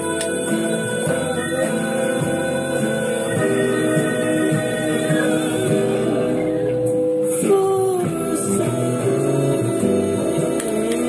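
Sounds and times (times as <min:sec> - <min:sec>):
instrumental accompaniment: 0:00.0 - 0:11.0
person singing long notes: 0:00.0 - 0:11.0.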